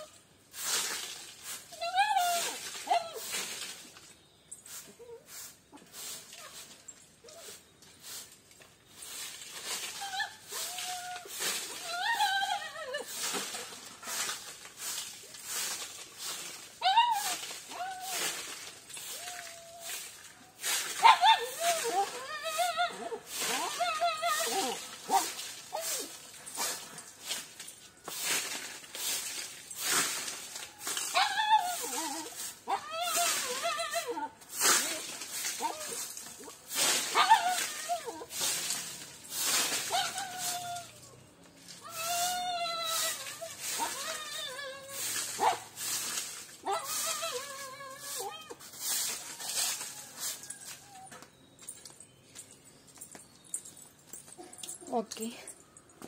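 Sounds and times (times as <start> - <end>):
broom sweeping dry leaves: 0.0 - 52.9.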